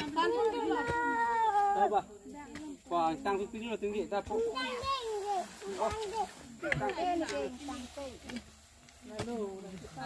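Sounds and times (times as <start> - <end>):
young children's voices chattering: 0.0 - 2.7, 4.3 - 8.5.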